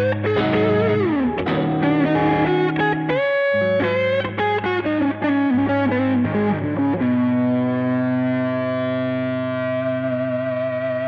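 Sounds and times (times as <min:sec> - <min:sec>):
distorted electric guitar: 0:00.0 - 0:11.0.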